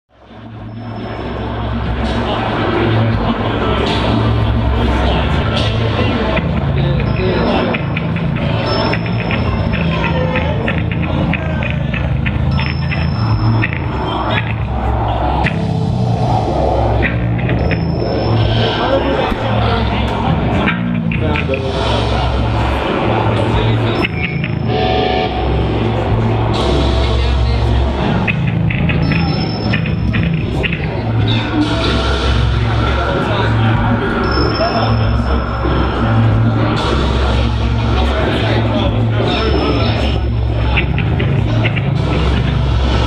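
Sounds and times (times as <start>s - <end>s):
heavy distorted bass and guitar: 0.1s - 43.0s
thin high whine: 0.2s - 20.8s, 21.4s - 43.0s.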